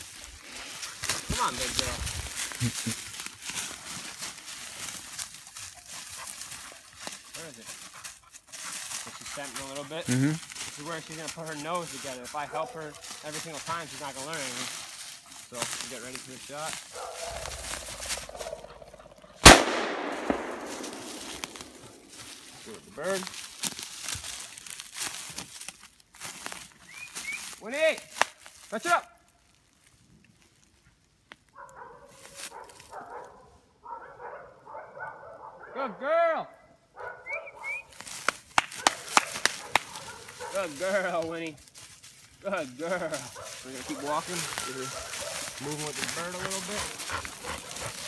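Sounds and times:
leaves rustling: 0:00.0 - 0:33.1, 0:37.7 - 0:48.0
footsteps on dry leaves and twigs: 0:00.0 - 0:33.4, 0:37.7 - 0:48.0
shotgun shot with echo: 0:19.4 - 0:22.2.

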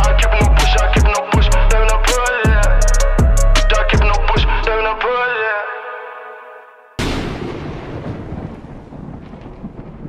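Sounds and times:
rumbling thunder-like sound effect: 0:07.0 - 0:10.0.

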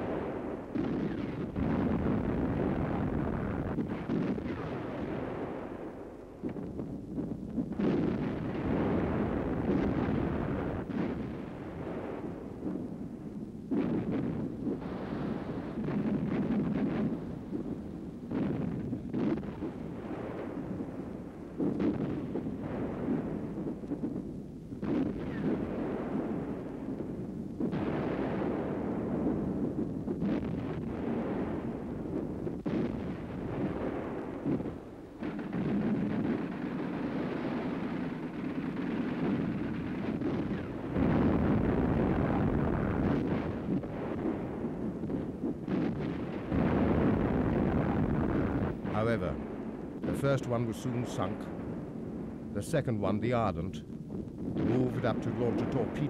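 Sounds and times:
naval guns firing: 0:00.0 - 0:56.0
rumble of wind and sea: 0:00.0 - 0:56.0
shells exploding: 0:13.7 - 0:56.0.

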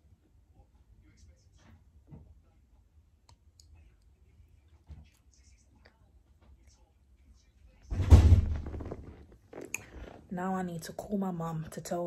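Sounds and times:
soft thump: 0:07.9 - 0:09.0.

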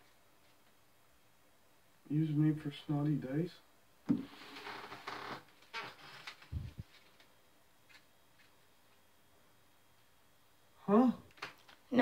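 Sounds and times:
paper rustling and crinkling: 0:06.0 - 0:08.6.

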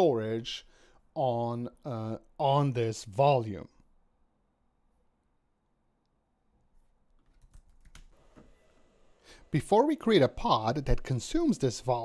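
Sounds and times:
faint computer keyboard typing: 0:07.2 - 0:08.2.

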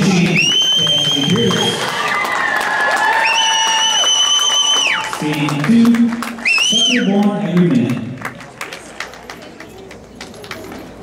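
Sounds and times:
audience clapping: 0:00.0 - 0:11.0.

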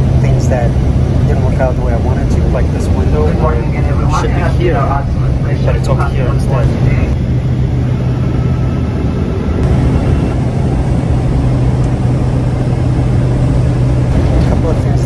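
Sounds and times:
airliner cabin drone: 0:00.0 - 0:15.0.

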